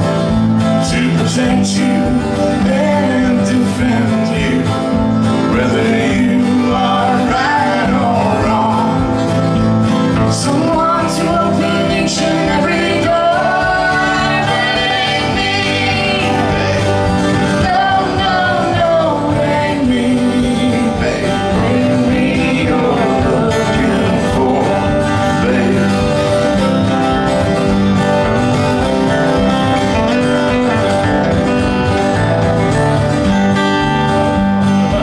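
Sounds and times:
electric bass: 0:00.0 - 0:35.0
strummed acoustic guitars: 0:00.0 - 0:35.0
person singing: 0:00.8 - 0:09.2, 0:10.1 - 0:26.6.

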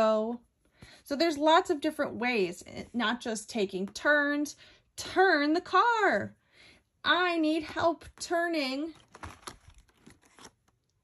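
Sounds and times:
paper rustling: 0:08.9 - 0:10.8.

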